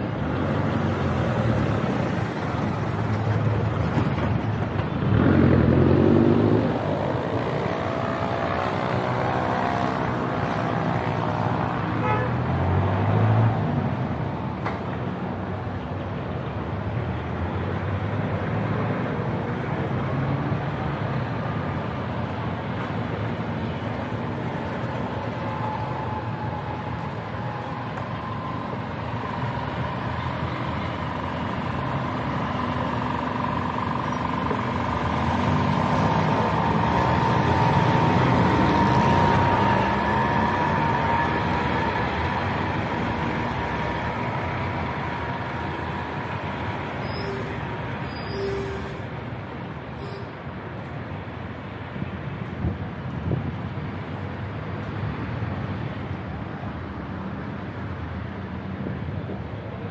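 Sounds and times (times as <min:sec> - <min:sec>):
vehicle engines passing: 0:00.0 - 0:59.9.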